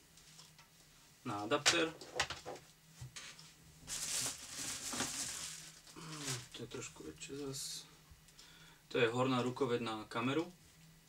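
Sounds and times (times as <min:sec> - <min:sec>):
packaging rustling: 0:03.8 - 0:06.6.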